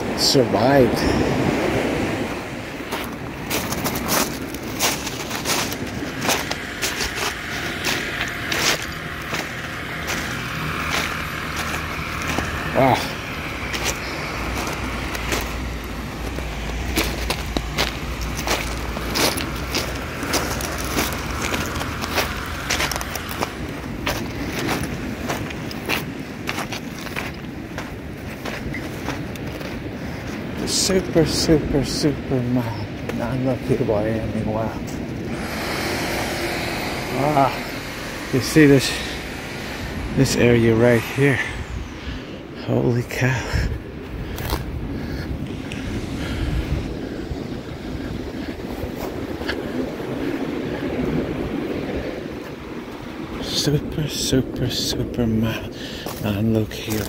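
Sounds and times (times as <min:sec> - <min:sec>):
low steady drone: 0:00.0 - 0:57.0
footsteps crunching on pebbles: 0:02.9 - 0:30.5, 0:43.1 - 0:44.7, 0:55.9 - 0:57.0.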